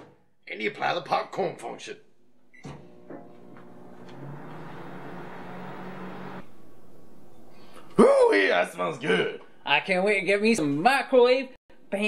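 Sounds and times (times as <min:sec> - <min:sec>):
microwave humming with fan: 0:02.5 - 0:07.5.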